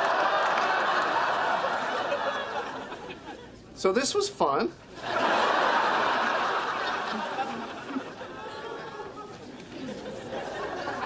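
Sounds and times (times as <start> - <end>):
murmur of many voices: 7.0 - 11.0.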